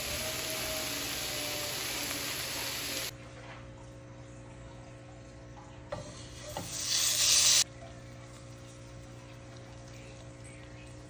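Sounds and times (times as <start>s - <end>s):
butter sizzling in frying pan: 0.0s - 3.1s, 6.7s - 7.6s.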